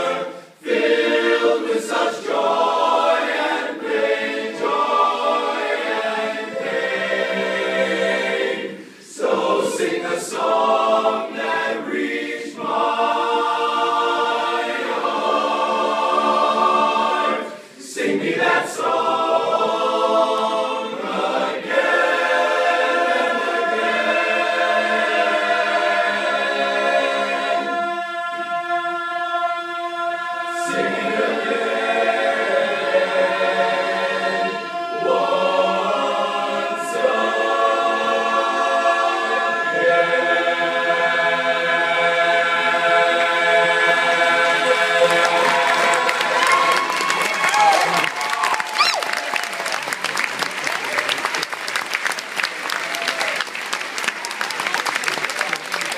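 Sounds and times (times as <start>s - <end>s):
men's chorus singing a cappella: 0.0s - 47.1s
audience applause: 44.4s - 55.9s.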